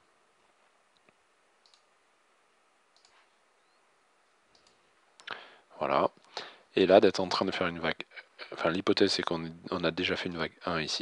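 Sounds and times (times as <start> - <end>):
computer mouse clicks: 0.9 - 1.9, 2.9 - 3.3, 4.5 - 5.3.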